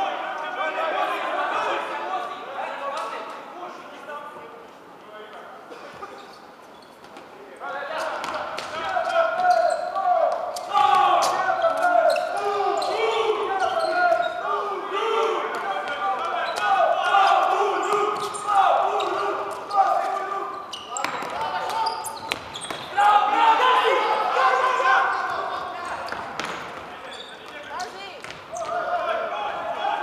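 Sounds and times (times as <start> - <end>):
players calling out: 8.0 - 30.0
shoes squeaking on wooden floor: 17.8 - 23.0, 25.1 - 28.9.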